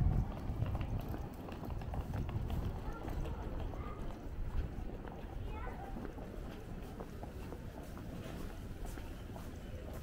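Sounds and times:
footsteps on brick pavement: 0:00.0 - 0:10.0.

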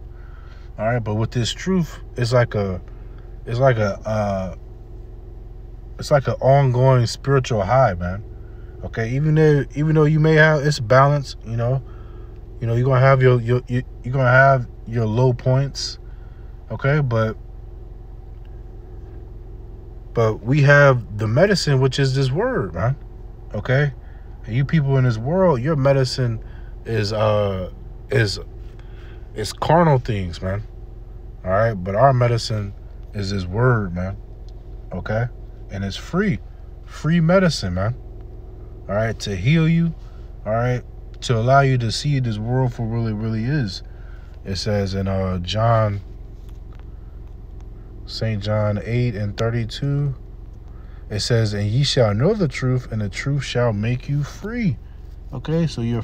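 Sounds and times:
low background hum: 0:00.0 - 0:56.0.

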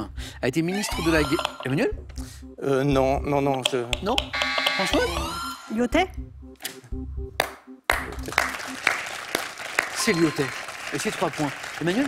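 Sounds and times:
suspense music with pulsing beat: 0:00.0 - 0:10.4
audience applause: 0:07.9 - 0:12.0.

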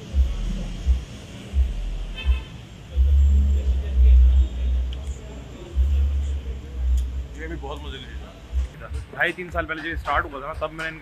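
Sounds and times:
dull low thumps: 0:00.0 - 0:04.9, 0:05.8 - 0:07.6
roadside traffic: 0:00.0 - 0:11.0.

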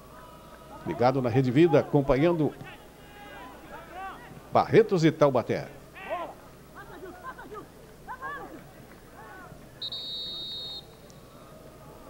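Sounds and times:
referee's whistle: 0:09.8 - 0:11.3.

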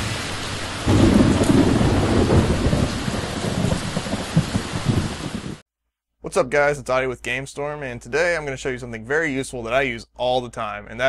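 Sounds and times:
steady rain: 0:00.0 - 0:05.6
thunder rumble: 0:00.0 - 0:05.6.

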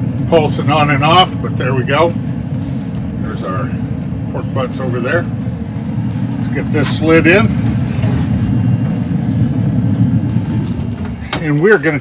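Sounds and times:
fan low rumble: 0:00.0 - 0:12.0.

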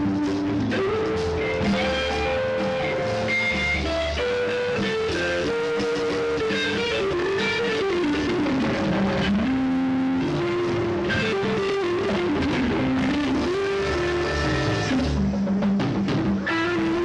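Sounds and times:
electric guitar melody: 0:00.0 - 0:17.0
rock band playing: 0:00.0 - 0:17.0.

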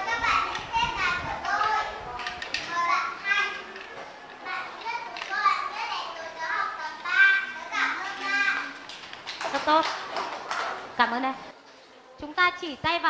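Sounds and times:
children speaking: 0:00.0 - 0:10.0.

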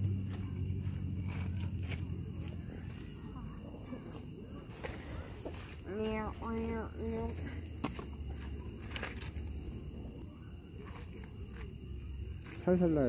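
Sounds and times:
steady low rumble: 0:00.0 - 0:10.4.

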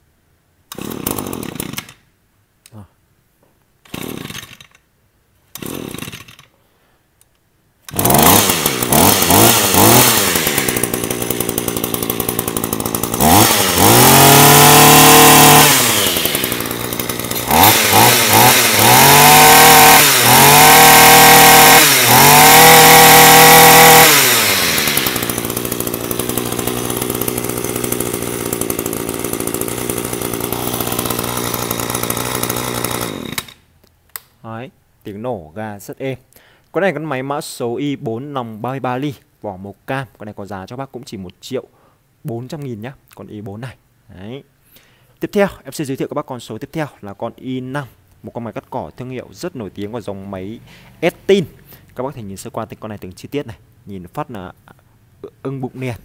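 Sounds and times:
brush cutter engine idling and revving: 0:00.7 - 0:02.0, 0:03.9 - 0:04.8, 0:05.6 - 0:06.5, 0:07.9 - 0:33.6
pull cord being pulled: 0:07.8 - 0:11.0.

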